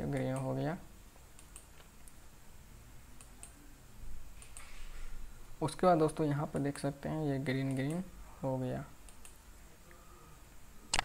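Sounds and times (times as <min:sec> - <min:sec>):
faint background hiss: 0:00.0 - 0:11.0
mouse click: 0:04.4 - 0:04.7.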